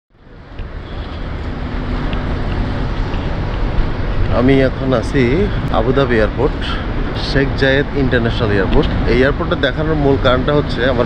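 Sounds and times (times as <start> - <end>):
outdoor rumble and hiss: 0.2 - 11.0.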